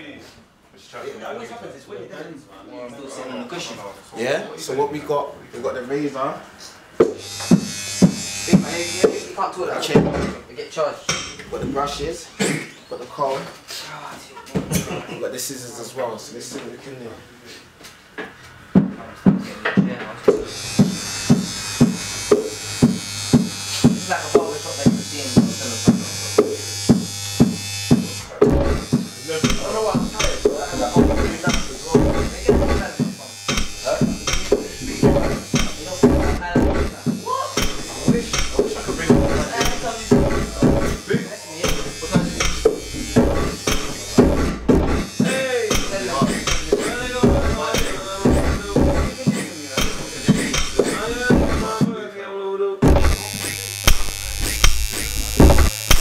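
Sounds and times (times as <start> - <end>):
bass line: 26.9 - 29.0, 29.7 - 32.9, 33.8 - 41.0, 41.9 - 45.2, 46.2 - 49.2, 51.2 - 51.8, 52.8 - 56.0
grime beat on pad sampler: 46.2 - 49.4, 50.3 - 51.8, 52.8 - 56.0.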